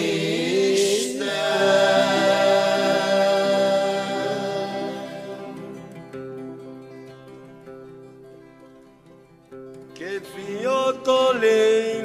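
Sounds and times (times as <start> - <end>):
person singing folk song: 0.0 - 6.2, 9.8 - 12.0.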